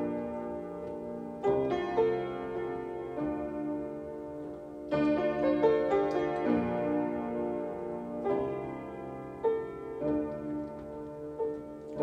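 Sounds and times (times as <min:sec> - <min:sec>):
piano chords ringing: 0:00.0 - 0:12.0.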